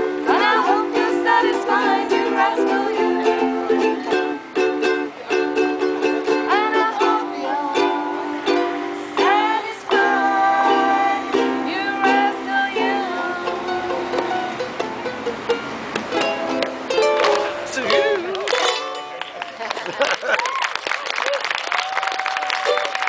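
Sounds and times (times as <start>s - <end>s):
sliding melody line: 0.0s - 19.2s
ukuleles strumming chords: 0.0s - 20.5s, 22.6s - 23.0s.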